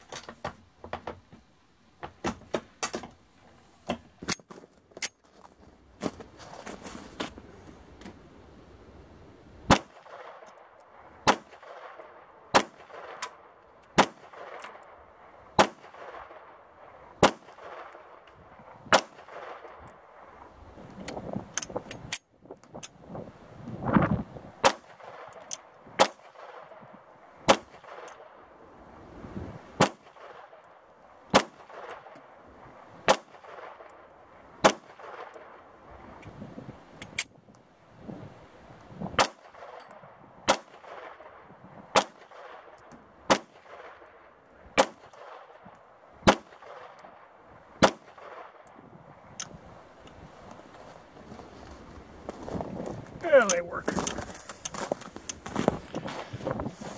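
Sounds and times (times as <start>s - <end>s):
pistol shots: 9.7s - 10.6s, 11.2s - 13.2s, 13.9s - 14.9s, 15.6s - 16.5s, 17.2s - 18.0s, 18.9s - 19.8s, 24.6s - 25.4s, 26.0s - 26.8s, 29.8s - 30.5s, 33.1s - 34.0s, 34.6s - 35.4s, 39.2s - 39.8s, 40.5s - 41.2s, 41.9s - 42.7s, 43.3s - 44.1s, 44.8s - 45.6s, 46.2s - 47.2s, 47.8s - 48.6s.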